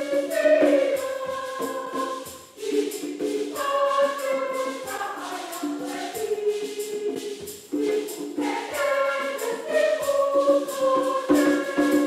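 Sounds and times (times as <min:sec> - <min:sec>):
church choir singing a hymn: 0:00.0 - 0:12.0
shakers: 0:00.0 - 0:12.0
tambourine: 0:00.0 - 0:12.0.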